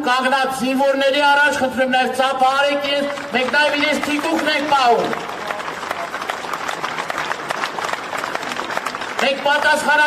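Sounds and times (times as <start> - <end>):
crowd applauding: 2.6 - 10.0.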